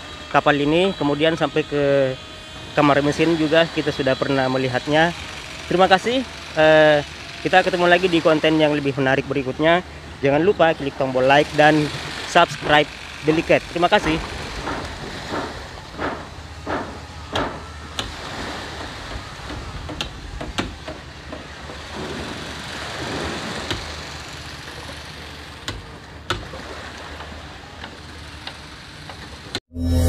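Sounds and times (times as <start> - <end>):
sharp knocks: 14.0 - 18.2, 18.8 - 22.3.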